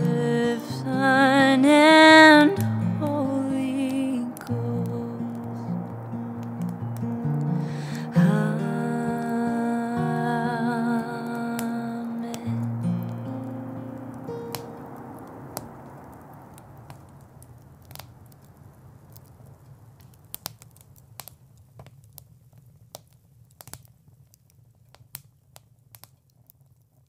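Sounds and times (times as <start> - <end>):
acoustic guitar note: 0.0 - 15.8
campfire crackling and popping: 0.0 - 27.0
person humming: 7.7 - 12.7.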